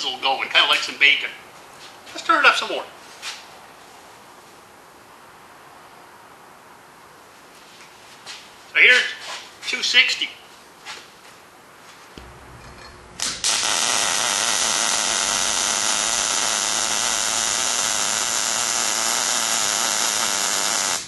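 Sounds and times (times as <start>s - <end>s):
low hum: 12.2s - 17.2s
mig welding arc sizzling: 12.2s - 21.0s.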